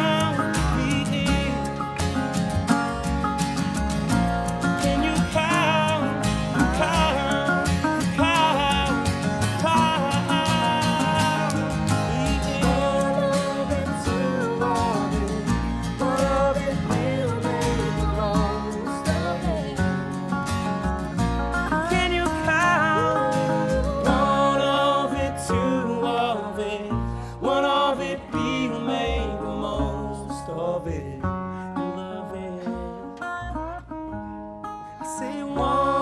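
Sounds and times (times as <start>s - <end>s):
accordion: 0.0s - 36.0s
resonator guitar: 0.0s - 36.0s
strummed acoustic guitar: 0.0s - 36.0s
upright bass: 0.0s - 36.0s.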